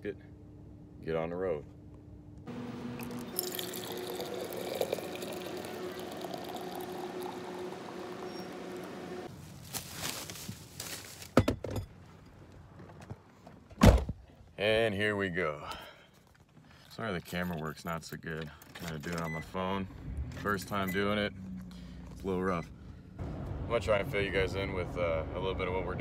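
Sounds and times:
coffee pouring into a bottle: 2.5 - 9.3.

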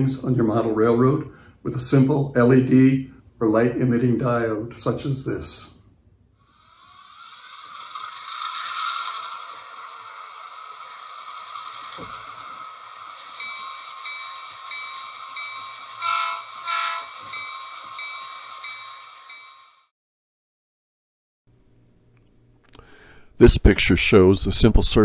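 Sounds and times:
passing train rushing: 6.5 - 19.9
train horn blasts: 16.0 - 17.2.

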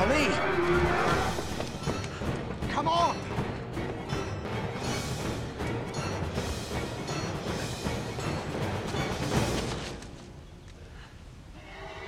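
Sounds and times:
orchestral action music: 0.0 - 10.0.

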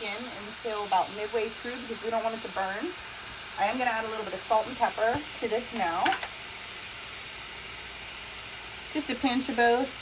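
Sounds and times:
mushrooms sizzling in oil: 0.0 - 10.0.

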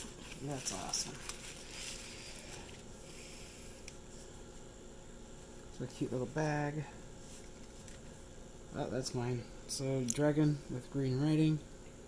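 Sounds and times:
bubble wrap rustling: 0.0 - 3.0.

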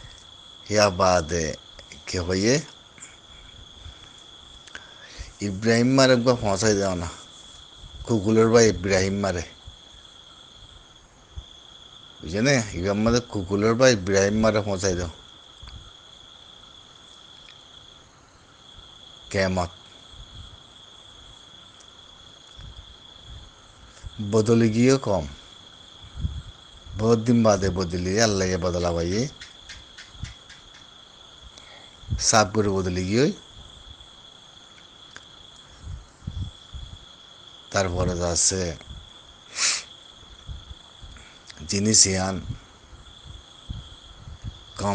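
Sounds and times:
insects trilling: 0.0 - 44.9
person speaking: 5.1 - 7.2.

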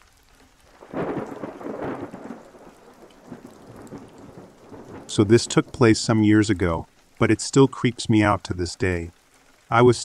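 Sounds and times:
rain falling: 0.0 - 10.0
thunder rolling: 0.8 - 6.9.

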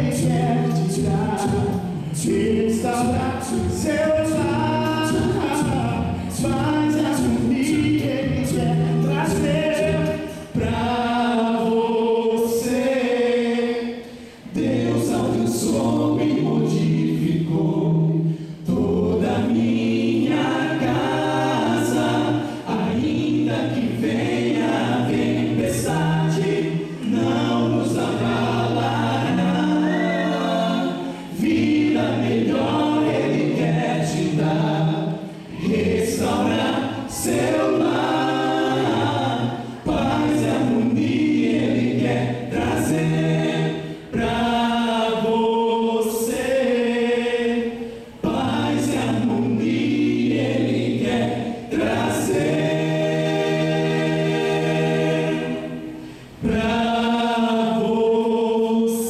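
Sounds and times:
male vocal quartet singing a cappella: 0.0 - 59.0.

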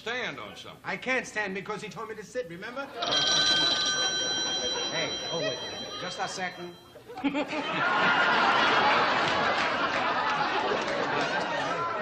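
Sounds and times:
studio audience laughing: 2.9 - 6.0, 7.1 - 12.0.

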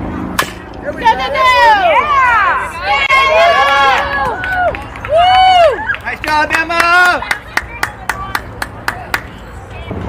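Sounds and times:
spectators shouting and cheering: 0.8 - 10.0.

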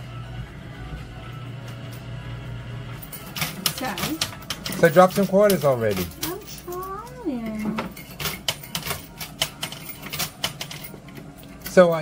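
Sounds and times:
coins clinking in a machine: 2.9 - 12.0.

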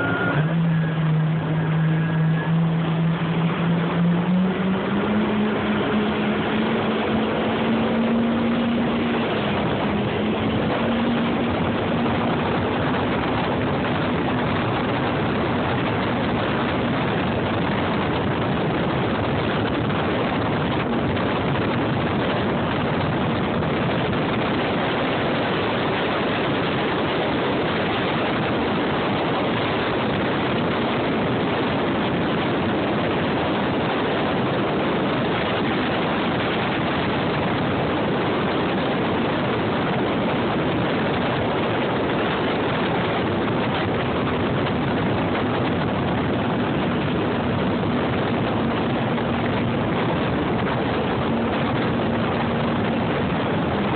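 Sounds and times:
jet ski engine accelerating: 0.0 - 53.9
rush of wind and water: 0.0 - 53.9.

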